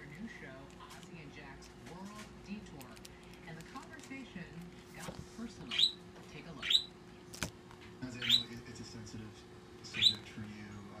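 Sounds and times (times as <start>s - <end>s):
bird chirping: 5.7s - 6.0s, 6.6s - 6.9s, 8.2s - 8.5s, 9.9s - 10.3s.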